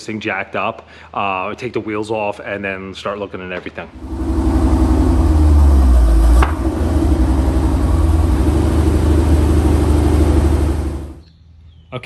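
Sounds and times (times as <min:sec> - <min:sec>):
car engine idling: 0:03.9 - 0:11.2.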